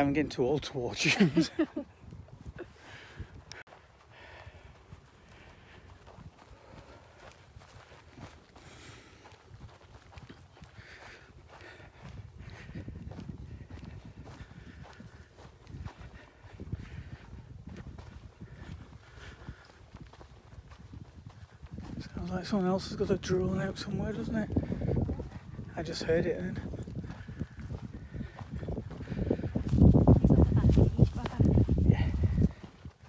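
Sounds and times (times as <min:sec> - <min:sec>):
footsteps on grass and sand: 0:00.0 - 0:33.0.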